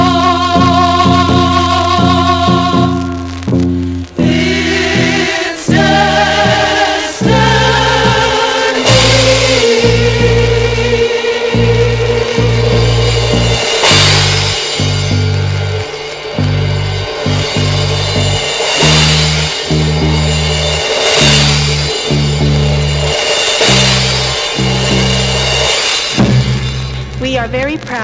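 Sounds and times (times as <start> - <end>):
cymbal crashes: 0.0 - 28.0
instrumental band music: 0.0 - 28.0
stepping bass line: 0.0 - 28.0.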